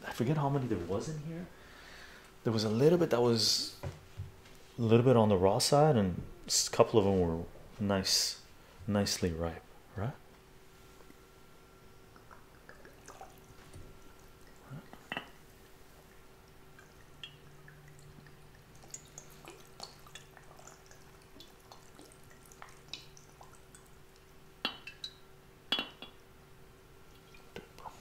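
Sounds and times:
small drips and ticks: 0:12.1 - 0:25.3, 0:27.0 - 0:28.0
liquid trickling into jar: 0:12.2 - 0:25.2, 0:27.1 - 0:27.7
glass clicks: 0:15.0 - 0:15.4, 0:24.6 - 0:26.2.

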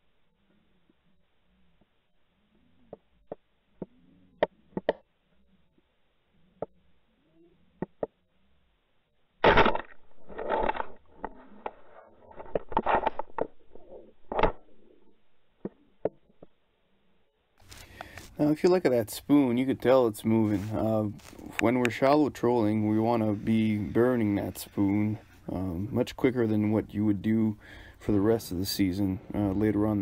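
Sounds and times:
clicks and knocks on camera housing: 0:02.9 - 0:05.0.

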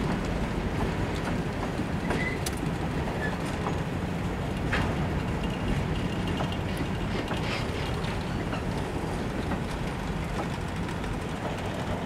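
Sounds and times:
freight cars rumbling: 0:00.0 - 0:12.0.

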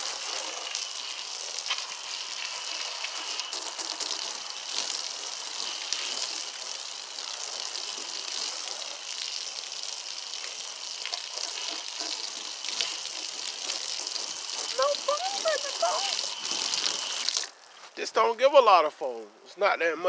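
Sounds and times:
hose spraying water on a car: 0:00.0 - 0:18.0.

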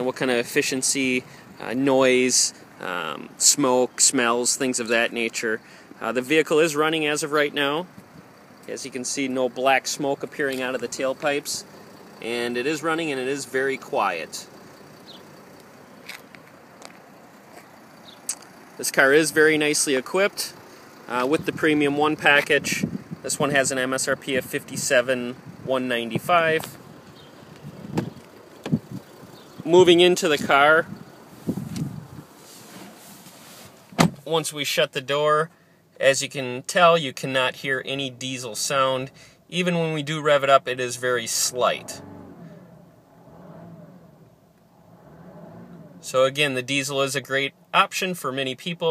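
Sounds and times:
car engine idling hum: 0:00.0 - 0:48.9.

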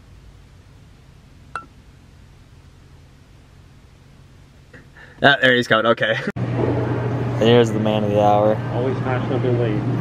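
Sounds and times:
quiet background hum: 0:00.0 - 0:06.3.

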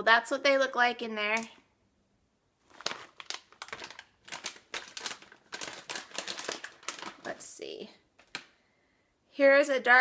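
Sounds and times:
plastic bag crinkling: 0:02.6 - 0:08.6.

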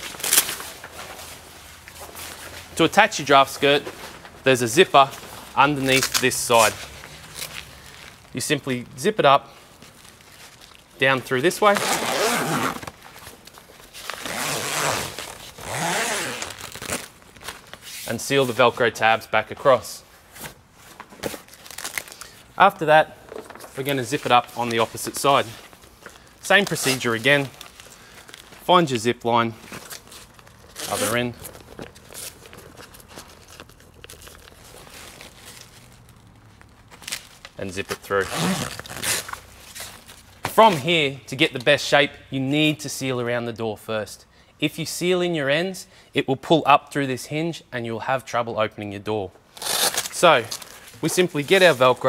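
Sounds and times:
canvas rustling and crinkling: 0:00.0 - 0:08.8, 0:09.6 - 0:18.8, 0:19.7 - 0:40.9, 0:49.5 - 0:52.0
zipper being drawn: 0:11.7 - 0:12.9, 0:14.2 - 0:16.7.

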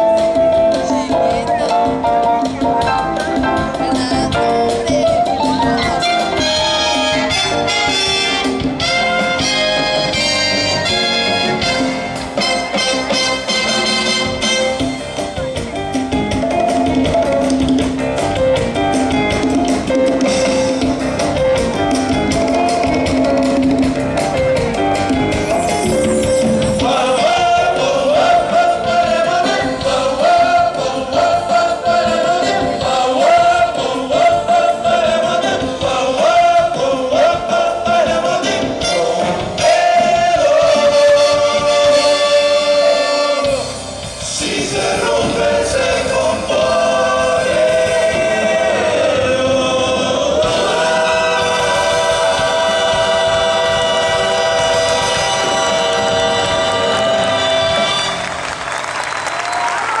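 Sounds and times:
live band music: 0:00.0 - 1:00.0
voices singing together: 0:25.5 - 0:58.5
crowd applause: 0:52.6 - 1:00.0.

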